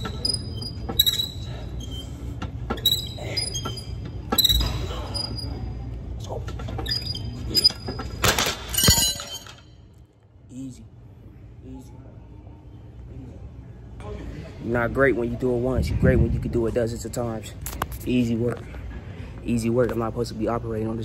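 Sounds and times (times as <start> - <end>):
low machine hum: 0.0 - 21.0
loud clatter of weights: 7.9 - 9.7.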